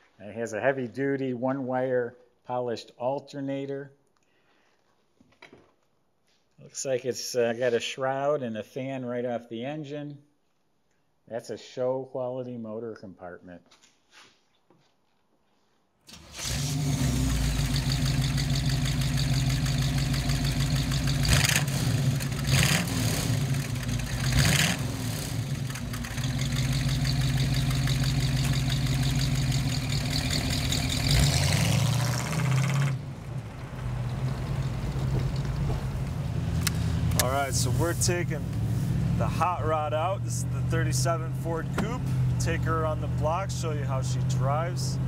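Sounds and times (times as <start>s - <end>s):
engine revving with deep note: 16.4s - 42.9s.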